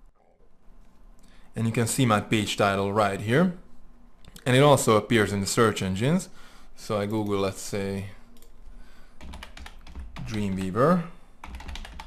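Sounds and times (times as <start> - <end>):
computer keyboard typing: 9.2 - 12.0.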